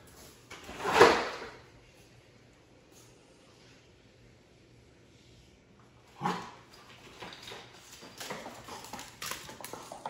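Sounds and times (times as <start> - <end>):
puppy claws tapping on hard floor: 6.9 - 10.0.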